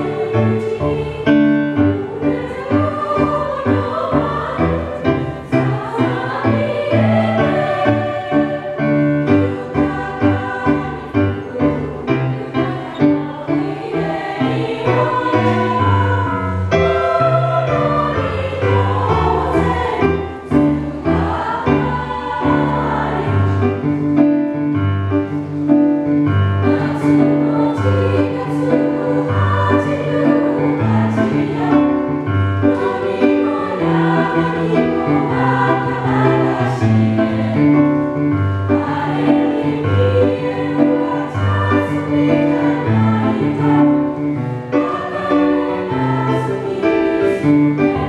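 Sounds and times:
small choir singing: 0.0 - 24.7, 25.6 - 48.0.

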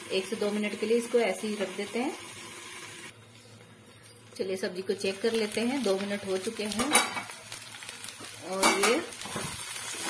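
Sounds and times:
vegetables frying under lid: 0.0 - 3.2, 4.4 - 10.0.

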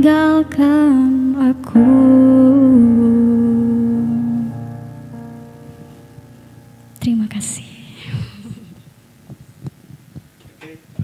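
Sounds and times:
electric keyboard chord: 0.0 - 7.0.

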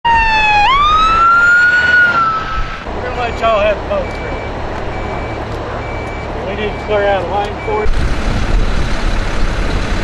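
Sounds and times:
emergency vehicle siren: 0.1 - 8.6.

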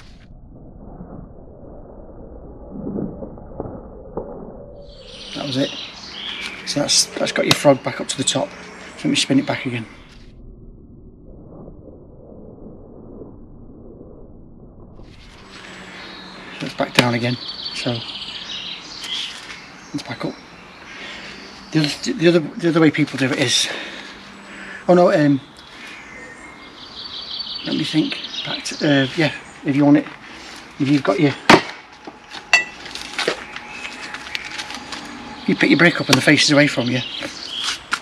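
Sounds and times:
songbird trilling chirp: 4.8 - 10.1, 15.6 - 30.1, 32.6 - 37.9
low muffled rumble: 6.3 - 17.3.

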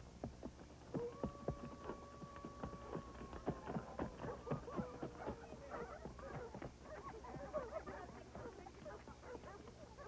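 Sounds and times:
horse hooves thudding: 0.0 - 9.9
dogs yipping and whimpering: 3.7 - 9.6.

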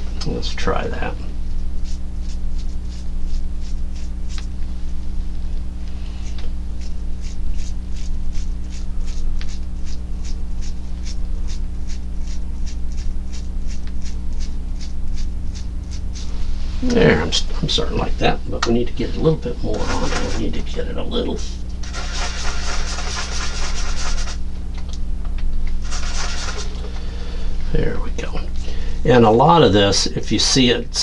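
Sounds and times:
steady low hum: 0.0 - 31.0
toothbrush bristles flicking paint: 1.8 - 4.5, 6.2 - 16.3, 21.8 - 24.4, 25.7 - 26.8.

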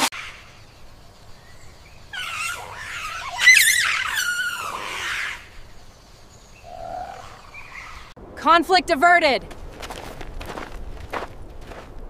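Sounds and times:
monkeys screeching: 0.0 - 0.6, 2.1 - 5.6, 6.6 - 8.1.

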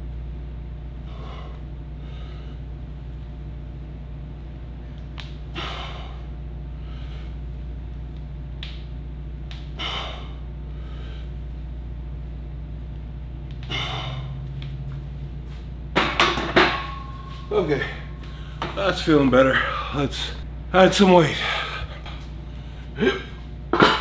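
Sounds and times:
steady low hum: 0.0 - 24.0
man breathing hard: 1.0 - 2.7, 5.5 - 7.5, 9.6 - 11.4, 13.6 - 14.6, 17.0 - 18.8, 19.4 - 20.4, 21.3 - 23.3.

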